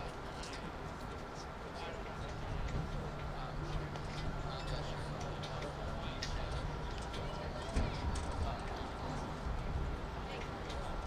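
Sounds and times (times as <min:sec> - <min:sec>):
distant voices talking: 0:00.0 - 0:11.0
outdoor background noise: 0:00.0 - 0:11.0.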